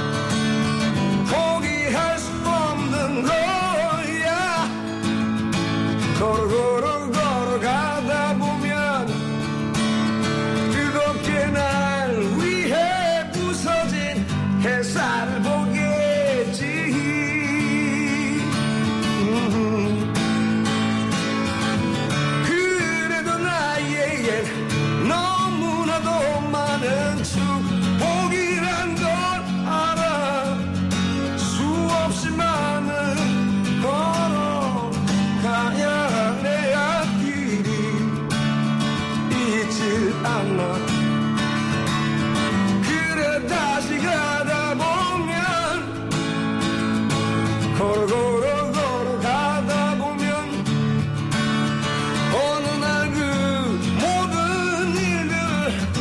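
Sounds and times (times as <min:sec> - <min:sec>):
man singing: 0:00.0 - 0:56.0
strummed acoustic guitar: 0:00.0 - 0:56.0
person singing: 0:01.2 - 0:05.0, 0:10.6 - 0:20.5, 0:31.3 - 0:38.2, 0:39.0 - 0:41.1, 0:47.6 - 0:50.8.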